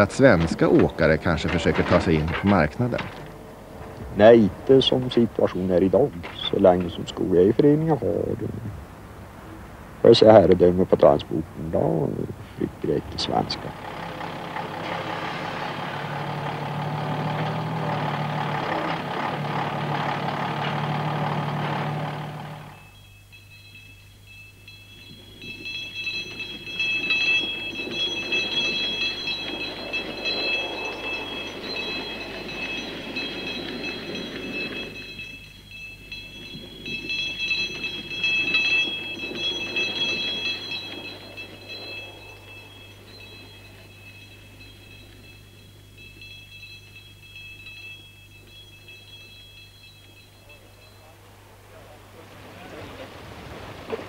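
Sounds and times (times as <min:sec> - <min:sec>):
heavy diesel truck engine running: 0:12.6 - 0:23.0
high steady tones: 0:12.8 - 0:52.2.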